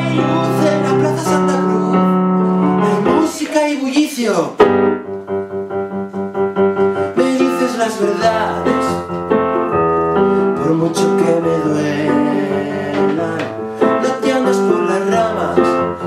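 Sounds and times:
man singing: 0.0s - 4.3s, 6.9s - 9.4s, 10.1s - 16.0s
keyboard piano chords: 0.0s - 16.0s.

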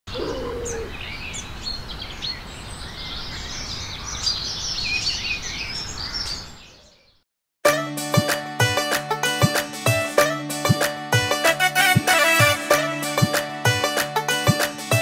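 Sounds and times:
birds chirping: 0.1s - 7.2s
music: 7.6s - 15.0s.

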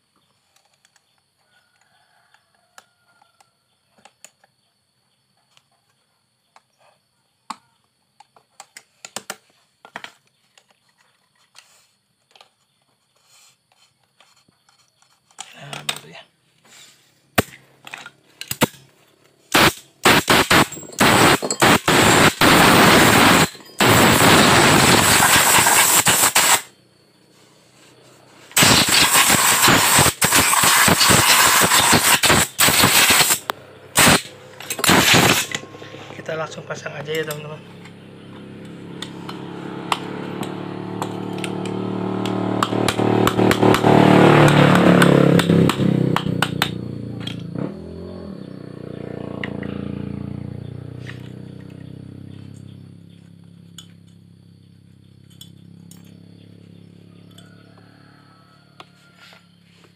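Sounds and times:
rapid mechanical rattling: 19.5s - 26.7s, 28.6s - 35.6s.

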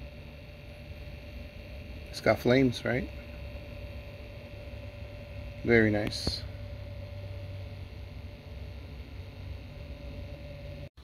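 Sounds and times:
faint whine: 0.0s - 11.0s
low electrical hum: 0.0s - 11.0s.

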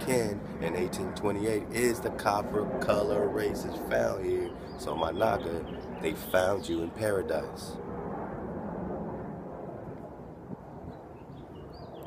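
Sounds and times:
distant engine rumble: 0.0s - 11.7s.

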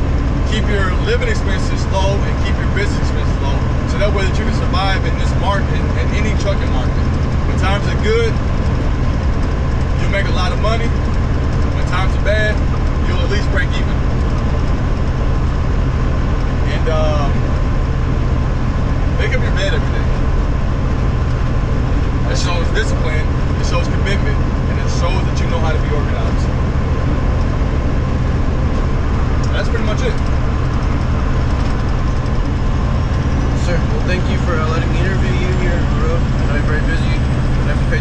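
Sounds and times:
truck engine and road drone: 0.0s - 38.0s.

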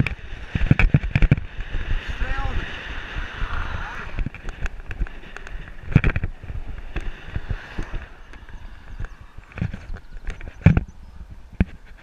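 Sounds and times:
wind rumble: 0.0s - 12.0s.

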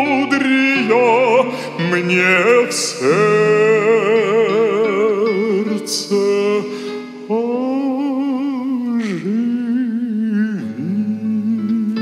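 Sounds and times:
man singing with vibrato: 0.0s - 12.0s
plucked guitar-like notes: 0.0s - 12.0s
soft instrumental accompaniment: 0.0s - 12.0s.

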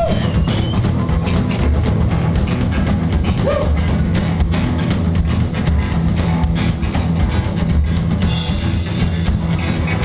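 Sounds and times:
drum kit beating: 0.0s - 10.0s
live rockabilly band: 0.0s - 10.0s
steady bass: 0.0s - 10.0s.

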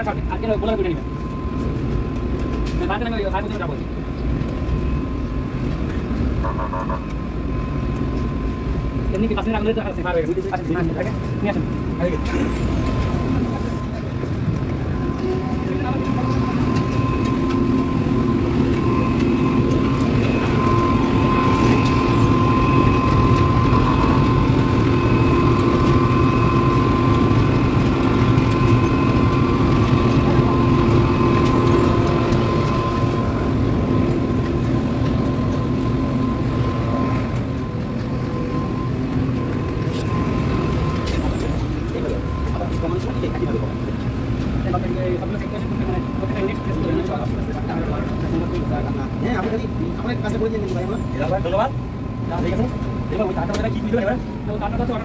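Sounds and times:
machinery droning with whining tones: 0.0s - 55.0s.

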